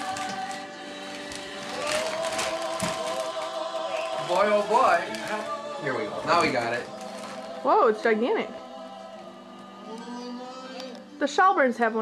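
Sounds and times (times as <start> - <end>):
paper rustling: 0.0 - 7.6
choir music: 0.0 - 12.0.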